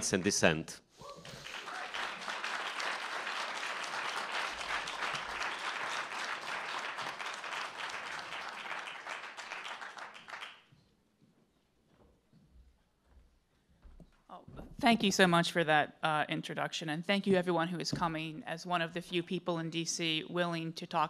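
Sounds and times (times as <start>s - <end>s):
audience applauding: 1.2s - 10.7s.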